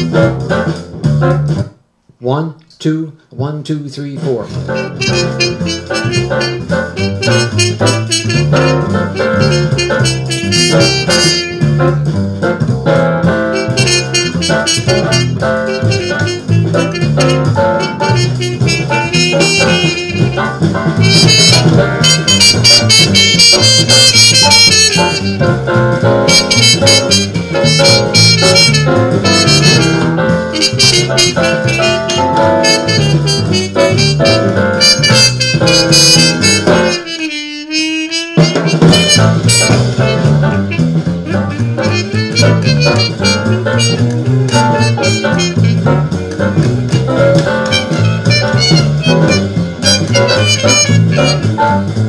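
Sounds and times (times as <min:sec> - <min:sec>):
backing band with walking bass: 0:00.0 - 0:01.8, 0:04.2 - 0:52.0
muted cornet playing swing jazz: 0:00.0 - 0:01.8, 0:04.0 - 0:52.0.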